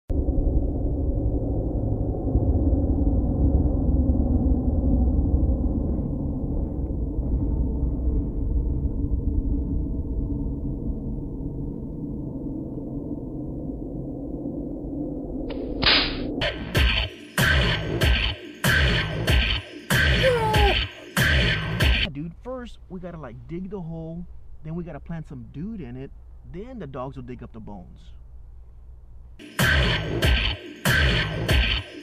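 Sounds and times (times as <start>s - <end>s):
low rumbling drone: 0.1s - 16.5s.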